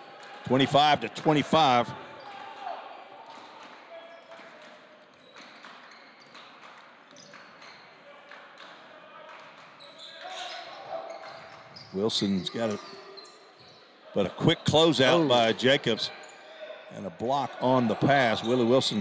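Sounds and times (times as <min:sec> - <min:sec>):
voices in gymnasium: 0:00.0 - 0:19.0.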